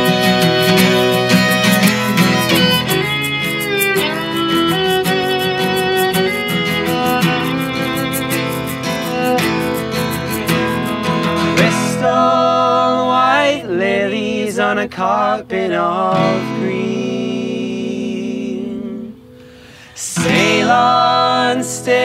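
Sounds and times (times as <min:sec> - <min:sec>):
person singing: 0:00.0 - 0:08.6, 0:11.5 - 0:19.2, 0:19.9 - 0:22.0
violin melody: 0:00.0 - 0:11.7
strummed acoustic guitar: 0:00.0 - 0:22.0.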